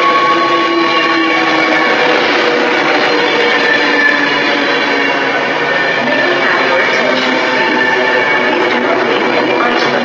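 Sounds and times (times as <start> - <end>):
electric train running noise: 0.0 - 10.0.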